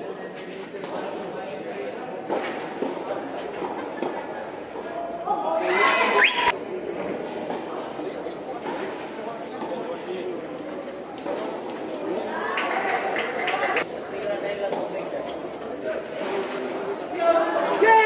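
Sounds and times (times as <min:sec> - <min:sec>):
chatter of voices: 0:00.0 - 0:18.0.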